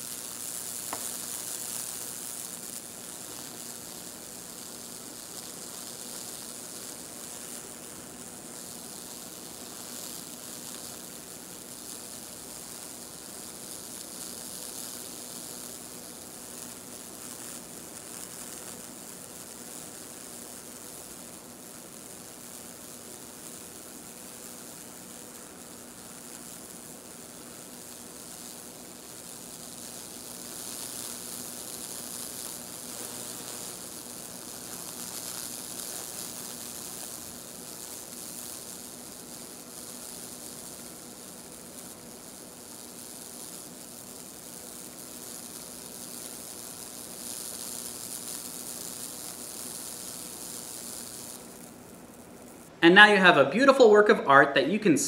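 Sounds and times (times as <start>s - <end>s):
electric arc sizzling and crackling: 0.0s - 55.0s
steady hum: 0.0s - 55.0s.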